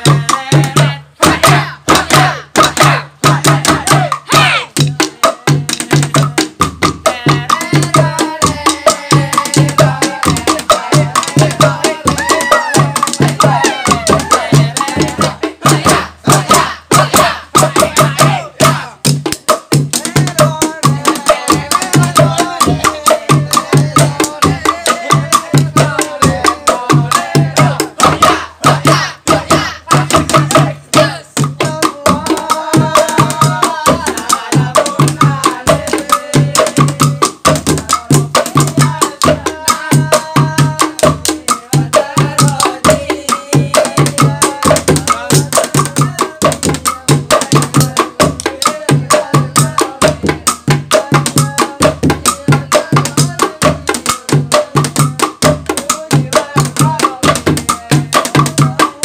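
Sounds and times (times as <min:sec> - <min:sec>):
loud voices calling out: 0:00.0 - 0:06.4, 0:07.0 - 0:19.1, 0:20.0 - 0:37.2
sticks beating makeshift drums: 0:00.0 - 0:59.0.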